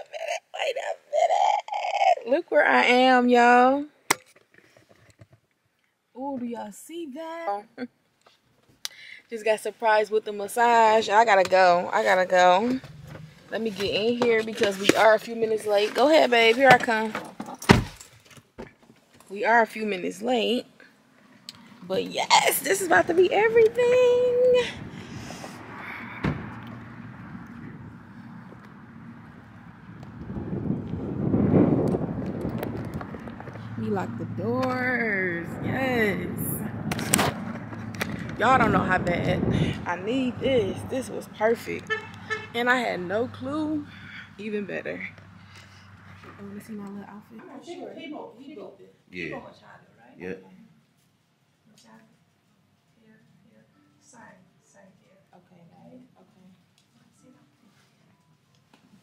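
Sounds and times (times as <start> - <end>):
wind rumble on microphone: 23.0 - 41.2
car door shutting: 26.2 - 26.8.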